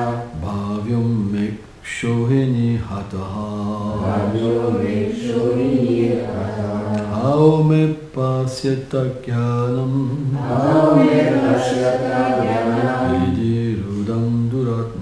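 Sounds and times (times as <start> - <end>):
man chanting melodically: 0.0 - 15.0.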